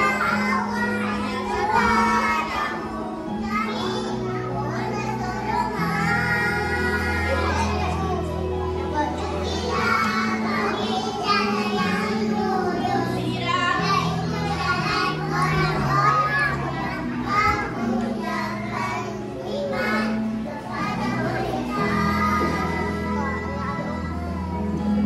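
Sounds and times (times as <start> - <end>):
children singing: 0.0 - 25.0.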